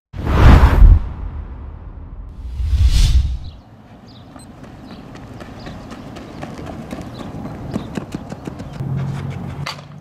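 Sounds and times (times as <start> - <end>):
running footsteps on dirt: 3.7 - 10.0.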